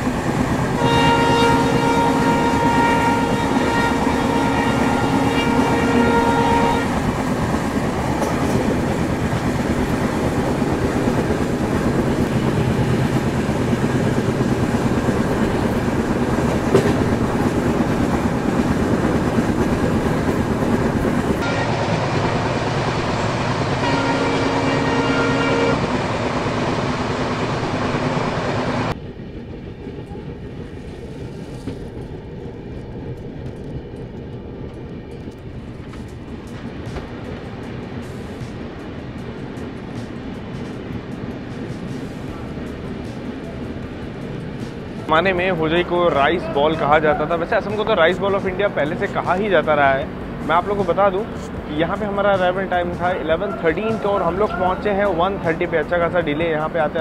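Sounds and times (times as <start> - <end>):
diesel locomotive horn: 0.0 - 7.3, 21.4 - 26.2
train running with wheel clatter: 0.0 - 57.0.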